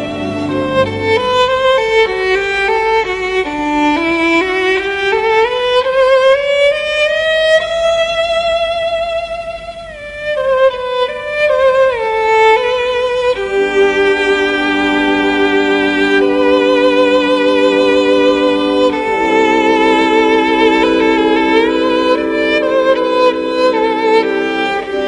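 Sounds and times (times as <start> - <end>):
bowed string melody: 0.0 - 25.0.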